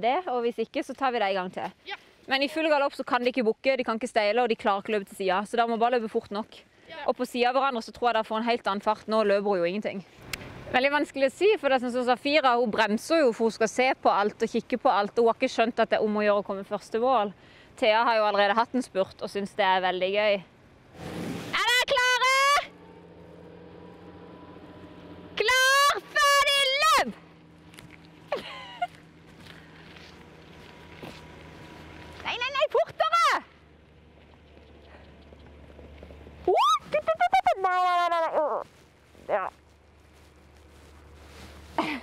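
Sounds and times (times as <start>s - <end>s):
women shouting: 21.6s - 22.8s, 25.4s - 27.2s, 32.3s - 33.5s, 36.5s - 38.2s
ponies galloping: 27.7s - 40.5s.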